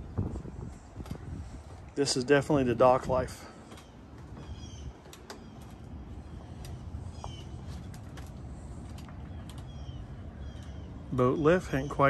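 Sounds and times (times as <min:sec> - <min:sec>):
low outdoor rumble: 0:00.0 - 0:12.0
birds chirping: 0:01.6 - 0:12.0.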